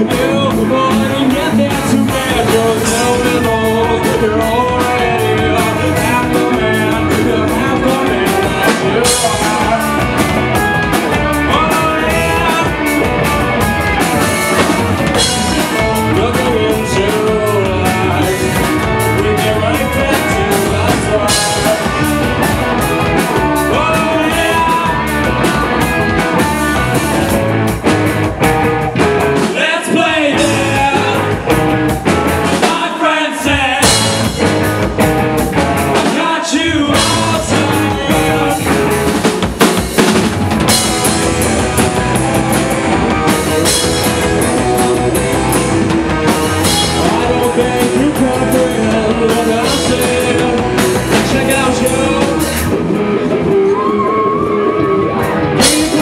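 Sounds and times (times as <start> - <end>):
man singing lead vocal: 0.0 - 27.4, 29.3 - 56.0
electric bass: 0.0 - 32.8, 33.4 - 56.0
distorted electric guitars: 0.0 - 56.0
drum kit: 0.0 - 56.0.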